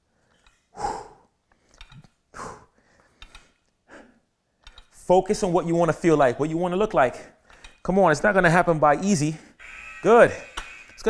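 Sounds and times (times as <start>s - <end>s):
man breathing out forcefully: 0.7s - 1.4s, 2.3s - 4.2s.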